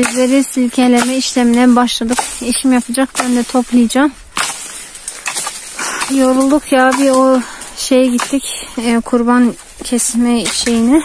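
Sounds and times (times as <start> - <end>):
sharp crack: 0.0 - 8.5
rustling leaves and twigs: 0.0 - 11.0.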